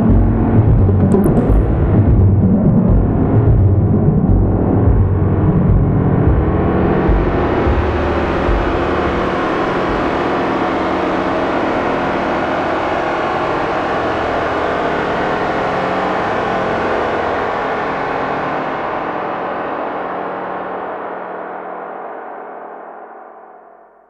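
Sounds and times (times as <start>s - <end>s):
low synth pulsing: 0.0s - 12.1s
synthesizer drone: 0.0s - 19.2s.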